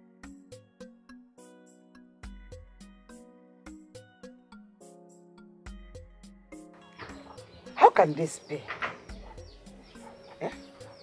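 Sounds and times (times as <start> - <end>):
quiet film music: 0.1 - 11.0.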